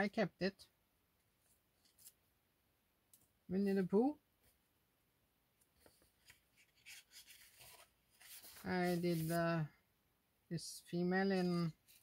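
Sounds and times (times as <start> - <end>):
paper page rustling: 1.5 - 2.2, 5.8 - 9.5, 11.7 - 12.0.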